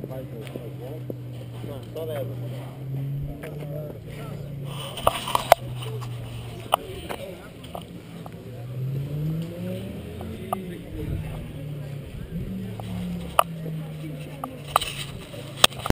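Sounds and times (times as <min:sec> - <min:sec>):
car engine running: 0:00.0 - 0:15.9
camera microphone handling noise: 0:04.8 - 0:07.9.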